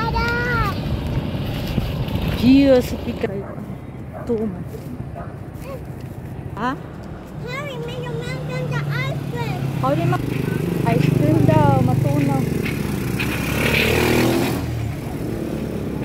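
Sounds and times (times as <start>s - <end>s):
motorcycle engine passing by: 8.2s - 16.0s.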